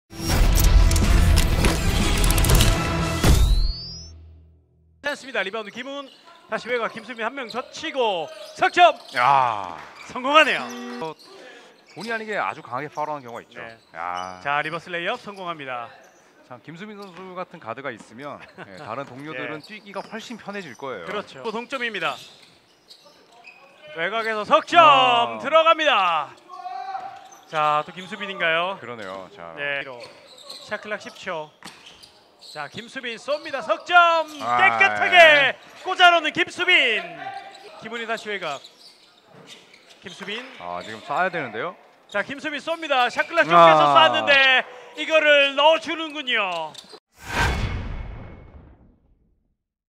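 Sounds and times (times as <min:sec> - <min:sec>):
sneaker squeak on floor: 0:03.4 - 0:04.2, 0:18.8 - 0:24.3, 0:30.0 - 0:32.8, 0:37.3 - 0:41.2
deep boom: 0:47.2 - 0:49.5.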